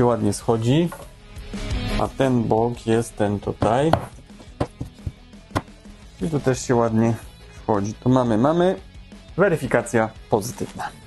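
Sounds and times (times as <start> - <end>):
light knocks of wooden panel: 3.6 - 5.7.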